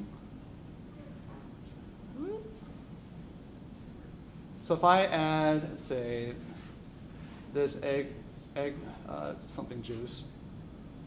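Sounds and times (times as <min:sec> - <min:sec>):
low room hum: 0:00.0 - 0:11.0
man murmuring: 0:02.2 - 0:02.6.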